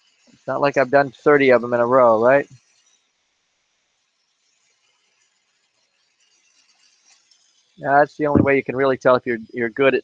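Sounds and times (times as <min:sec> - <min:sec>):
man speaking: 0:00.5 - 0:02.5, 0:07.8 - 0:10.0.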